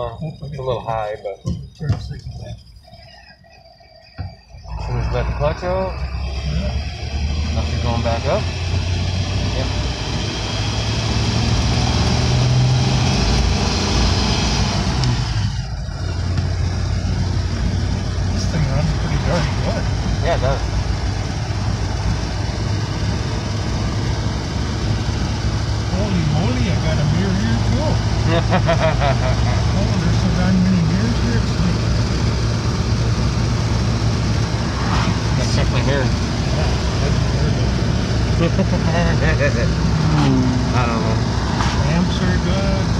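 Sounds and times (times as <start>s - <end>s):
car engine running: 0.0s - 42.9s
road noise: 0.0s - 42.9s.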